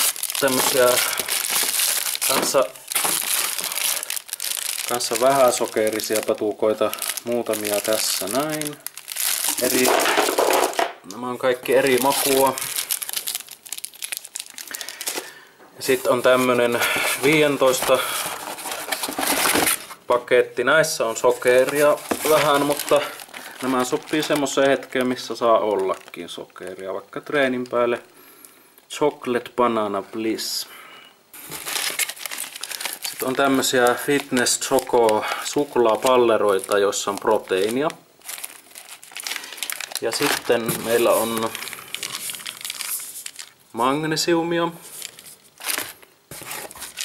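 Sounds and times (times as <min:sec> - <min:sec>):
cardboard carton rustling and crackling: 0:00.0 - 0:06.4, 0:15.8 - 0:20.0, 0:21.4 - 0:24.8, 0:31.4 - 0:35.2, 0:35.9 - 0:43.5, 0:44.9 - 0:47.0
foil packets crinkling: 0:00.0 - 0:10.9, 0:11.6 - 0:20.0, 0:21.2 - 0:26.7, 0:31.4 - 0:43.7, 0:44.8 - 0:47.0.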